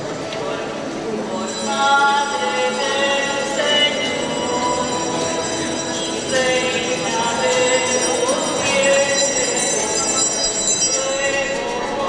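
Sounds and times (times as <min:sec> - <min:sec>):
bells ringing: 0:01.3 - 0:12.0
music: 0:01.3 - 0:12.0.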